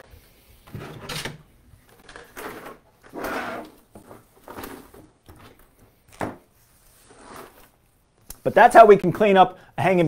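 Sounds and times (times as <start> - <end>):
scraping and rustling on table: 6.5 - 7.8.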